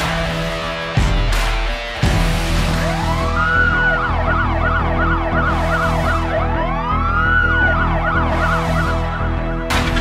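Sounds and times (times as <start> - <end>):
background music: 0.0 - 10.0
police siren: 2.4 - 9.7.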